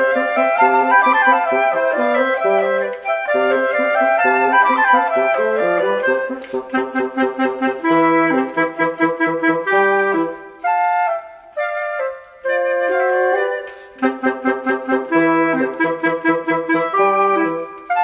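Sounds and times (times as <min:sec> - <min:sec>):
clarinet: 0:00.0 - 0:18.0
flute: 0:00.0 - 0:18.0.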